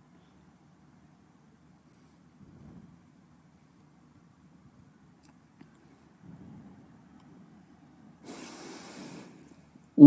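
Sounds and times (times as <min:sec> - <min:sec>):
quiet breath close to microphone: 0:08.2 - 0:09.8.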